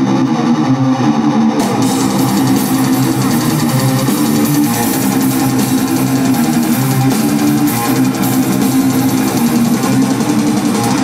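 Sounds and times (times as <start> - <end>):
bass guitar: 0.0 - 11.0
distorted electric guitars: 0.0 - 11.0.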